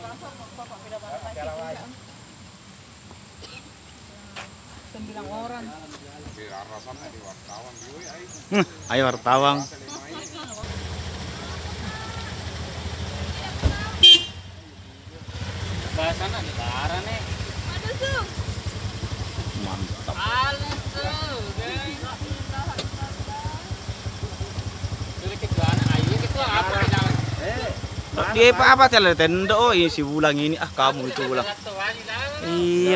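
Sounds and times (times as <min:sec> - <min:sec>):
voices chattering: 0:00.0 - 0:32.9
car engine idling: 0:06.3 - 0:32.9
car horn toot: 0:13.8 - 0:14.6.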